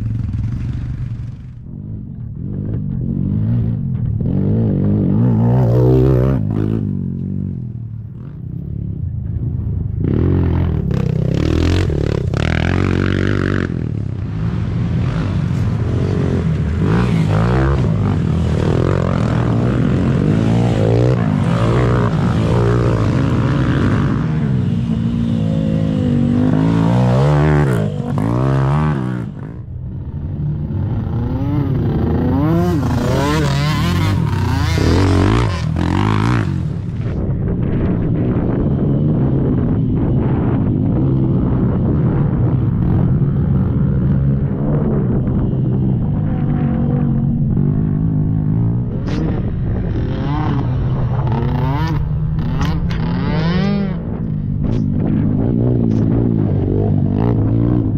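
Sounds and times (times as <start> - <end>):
atv engine revving: 10.0 - 37.2, 42.2 - 57.9.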